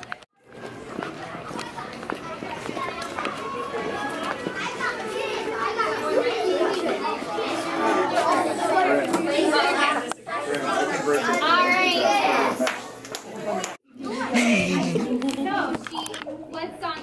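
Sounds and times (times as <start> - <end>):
children talking and playing: 0.0 - 17.0.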